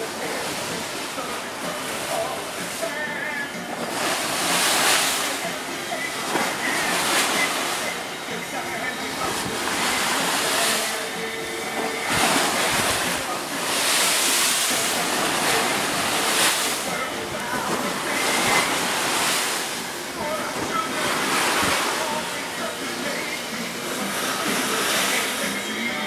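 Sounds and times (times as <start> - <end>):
waves breaking against boat hull: 0.0 - 26.0.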